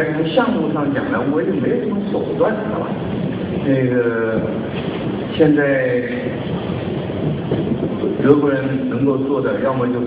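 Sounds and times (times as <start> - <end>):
rumbling lecture hall room noise: 0.0 - 10.0.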